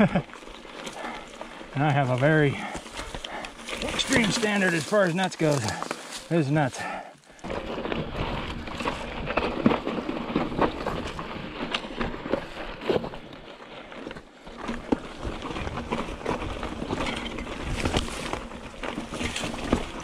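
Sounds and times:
bike rattling and knocking: 0.0 - 20.0
bike tyres crunching over rock: 0.0 - 20.0.

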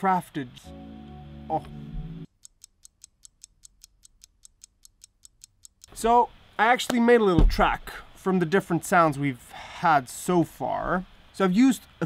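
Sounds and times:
clock ticking: 1.6 - 6.2.

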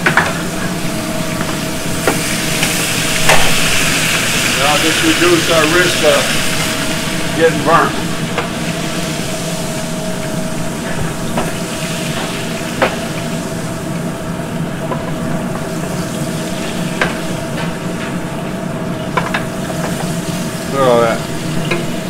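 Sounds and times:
low steady hum: 0.0 - 22.0
meat sizzling in fat: 0.0 - 22.0.

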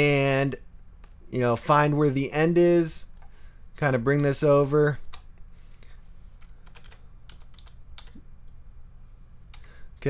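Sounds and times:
faint low hum: 0.0 - 10.0
computer keyboard clicks: 6.4 - 8.6.

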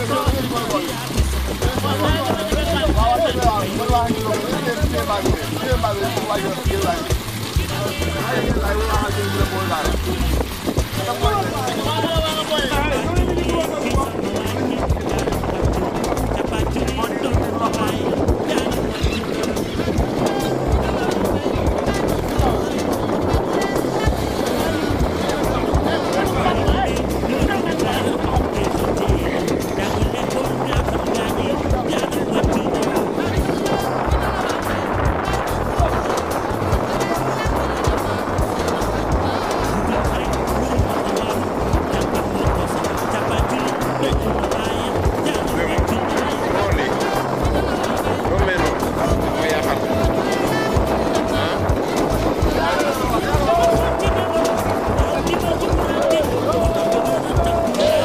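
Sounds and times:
churning sea water: 0.0 - 58.0
music: 0.0 - 58.0
voices: 0.0 - 58.0
wind: 0.0 - 58.0.

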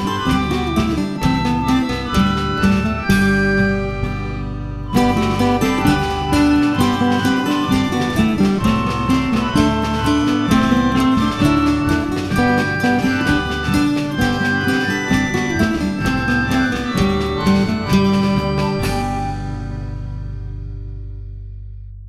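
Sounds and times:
sustained melody line: 0.0 - 20.8
plucked acoustic guitar: 0.0 - 21.0.

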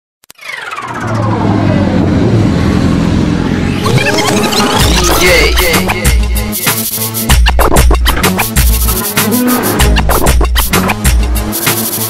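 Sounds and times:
whine sliding down in pitch: 3.6 - 6.0.

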